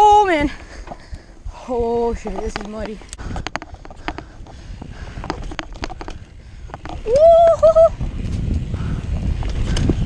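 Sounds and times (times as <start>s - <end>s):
bike rattling over bumps: 0.0s - 10.0s
wind: 0.0s - 10.0s.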